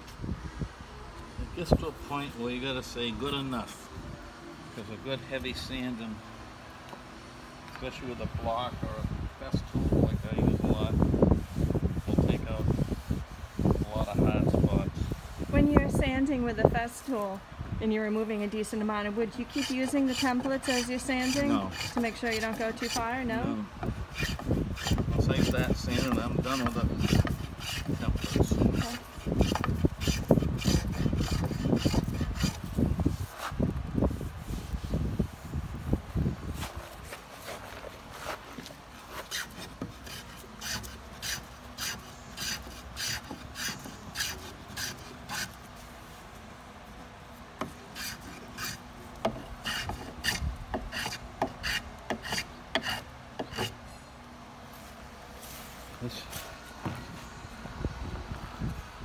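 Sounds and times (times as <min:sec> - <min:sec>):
hand plane shaving wood: 0:19.4 - 0:23.2, 0:24.1 - 0:32.7, 0:39.1 - 0:45.6, 0:47.9 - 0:53.8.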